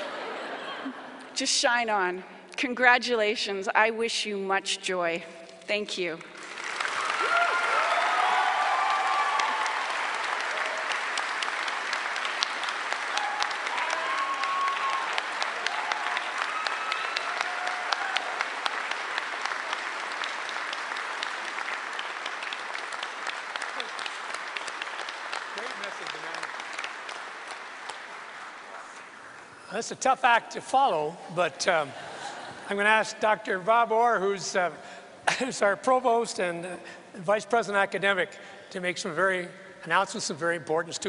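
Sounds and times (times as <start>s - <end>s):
audience applauding: 6.4s - 29.5s.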